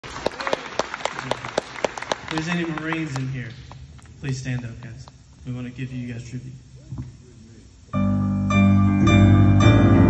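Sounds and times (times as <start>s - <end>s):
hands clapping steady beat: 0.0s - 5.2s.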